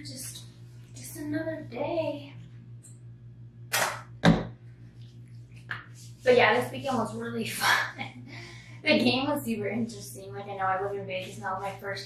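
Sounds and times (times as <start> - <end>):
soft rub: 5.1 - 7.0.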